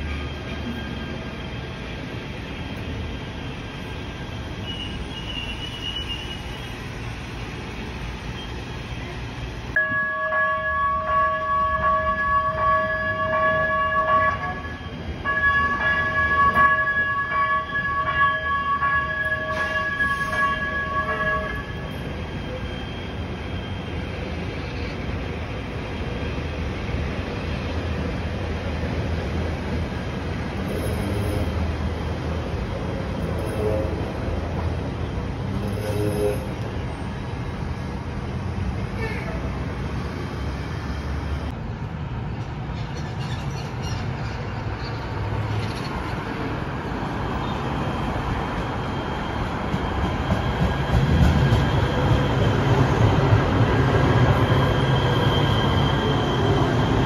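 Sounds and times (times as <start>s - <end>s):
light rail train running: 0.0s - 57.0s
traffic: 0.0s - 57.0s
train horn blasts: 9.8s - 21.8s, 33.4s - 34.2s, 35.6s - 36.6s.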